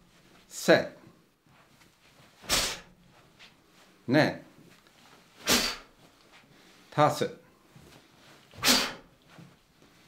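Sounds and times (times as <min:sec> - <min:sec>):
sharp forceful exhalation: 0:02.4 - 0:03.0, 0:05.4 - 0:06.0, 0:08.6 - 0:09.1.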